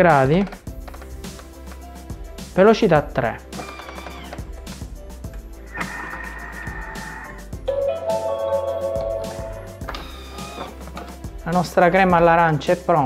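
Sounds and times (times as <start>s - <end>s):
background music with held notes: 0.0s - 13.0s.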